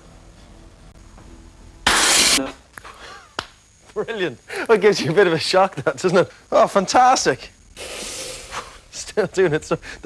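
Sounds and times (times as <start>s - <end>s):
tube bursting with gas rush: 1.9s - 2.4s, 7.8s - 8.9s.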